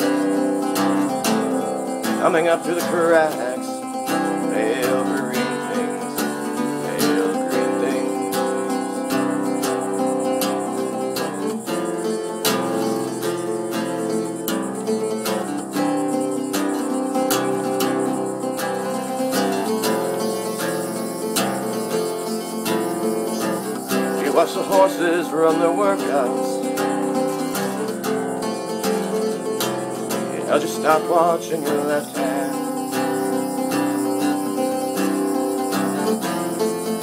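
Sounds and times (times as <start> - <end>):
mandocello strummed: 0.0 - 37.0.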